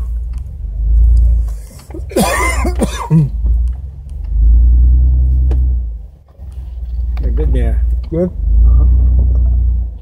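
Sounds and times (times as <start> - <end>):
off-road vehicle engine rumble: 0.0 - 10.0.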